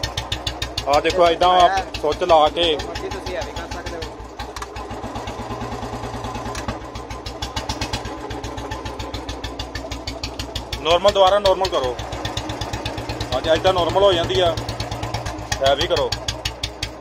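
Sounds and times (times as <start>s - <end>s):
motorcycle engine idling: 0.0s - 17.0s.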